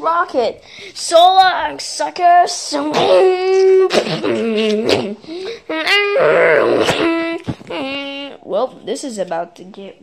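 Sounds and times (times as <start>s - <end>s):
person wailing and moaning: 2.7s - 8.2s.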